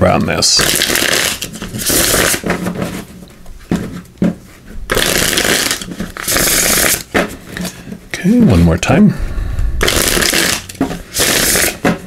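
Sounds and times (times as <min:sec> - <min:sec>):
cards riffle-shuffling: 0:00.5 - 0:08.0, 0:09.8 - 0:12.0.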